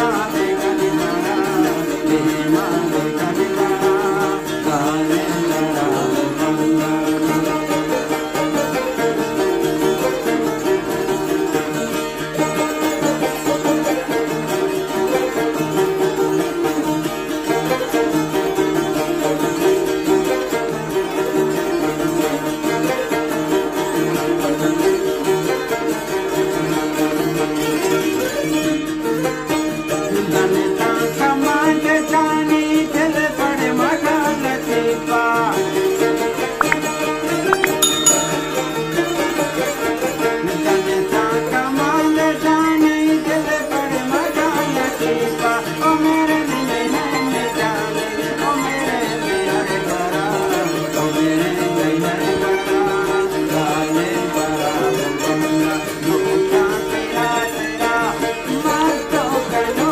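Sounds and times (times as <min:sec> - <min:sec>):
plucked strings folk melody: 0:00.0 - 0:59.9.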